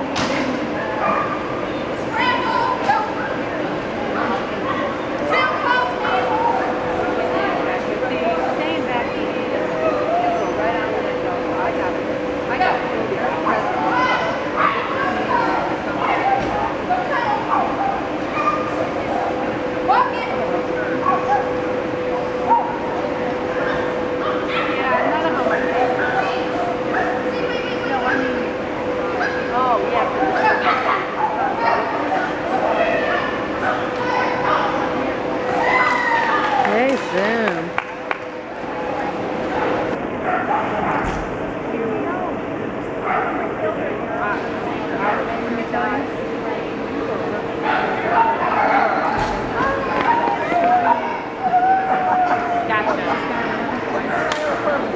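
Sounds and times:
murmur of people talking: 0.0s - 54.9s
steady hum: 0.0s - 54.9s
dogs barking and yipping: 1.0s - 1.5s.

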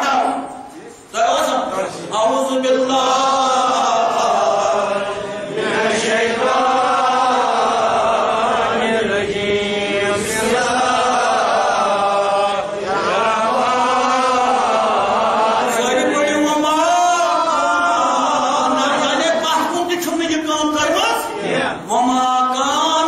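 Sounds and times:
man chanting melodically: 0.0s - 23.0s.

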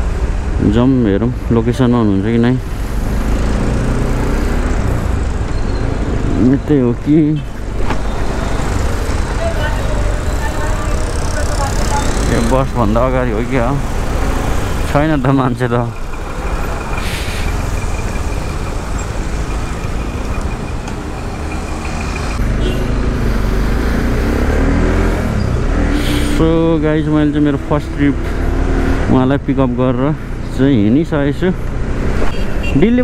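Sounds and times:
road and wind noise: 0.0s - 33.0s
motorcycle engine rumbling: 0.6s - 33.0s.

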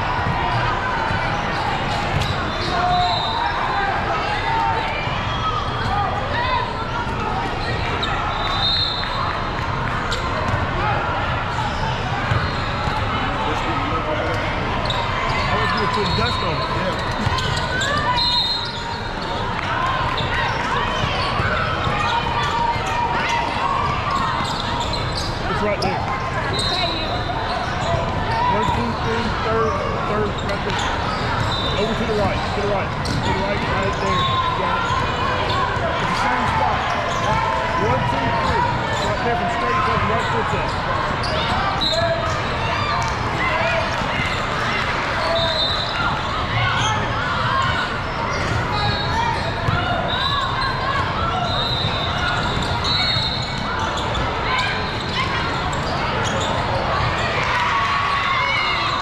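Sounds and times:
babble of voices: 0.0s - 59.0s
basketball bouncing on wooden court: 12.3s - 13.0s
high shoe squeaks: 20.4s - 42.4s, 45.2s - 56.8s.

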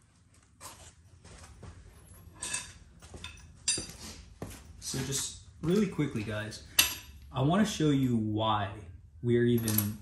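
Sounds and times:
metal hand tools clinking: 9.6s - 10.0s.

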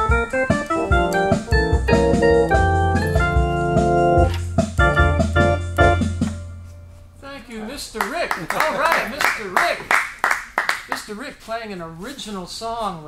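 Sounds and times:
organ playing chords: 0.0s - 7.2s.

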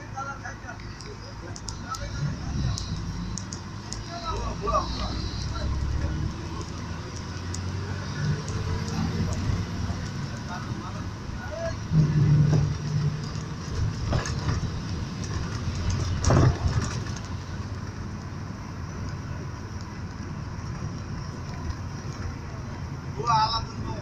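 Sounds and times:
car engine and tyre rumble: 0.0s - 24.0s.

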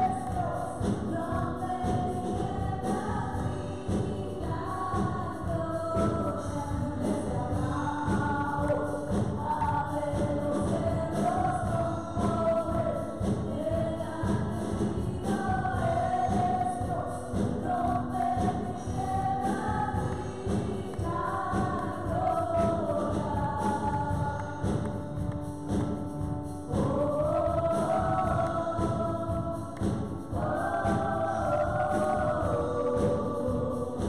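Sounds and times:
female group singing gospel: 0.0s - 25.8s, 26.6s - 34.0s
live band with drum beat: 0.0s - 34.0s.

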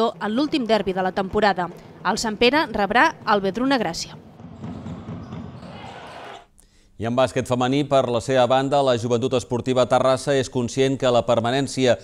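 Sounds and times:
players' voices echoing: 2.2s - 7.8s
basketball bouncing: 3.0s - 6.2s.

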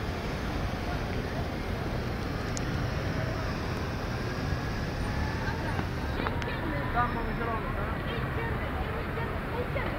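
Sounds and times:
crowd voices: 0.0s - 9.9s
traffic noise: 0.0s - 9.9s.

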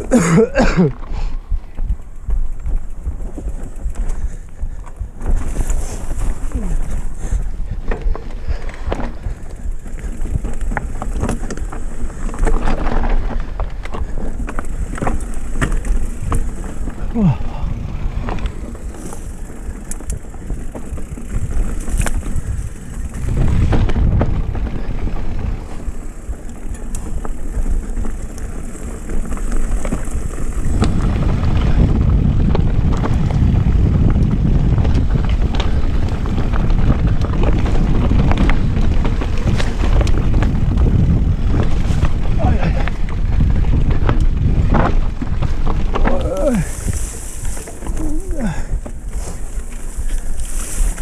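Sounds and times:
bike rattling over rocks: 0.0s - 51.0s
wind buffeting microphone: 0.0s - 51.0s.

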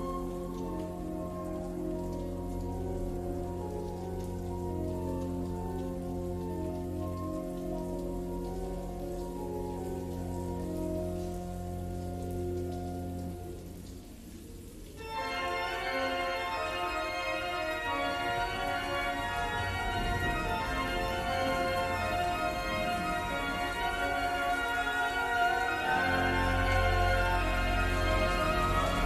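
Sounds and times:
slow keyboard chords: 0.0s - 14.4s, 15.0s - 29.0s
rain falling: 0.0s - 29.0s
deep bass drone: 25.9s - 29.0s.

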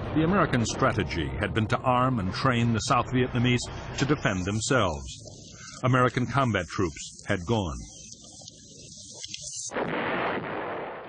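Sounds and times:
explosion blast with rumble: 9.7s - 11.0s.

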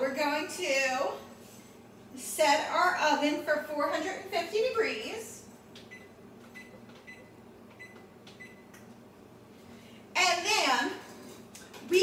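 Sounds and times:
short high oven beeps: 5.9s - 8.7s.

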